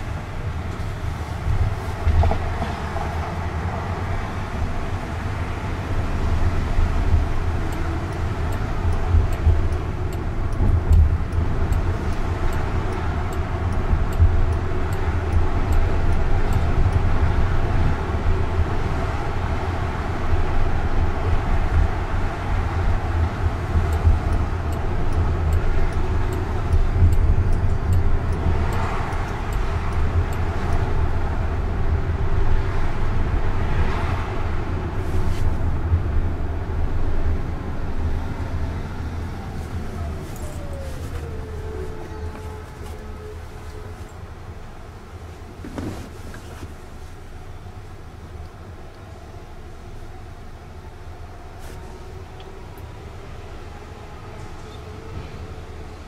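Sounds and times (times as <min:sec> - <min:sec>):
road and tyre rumble in car: 0:00.0 - 0:56.0.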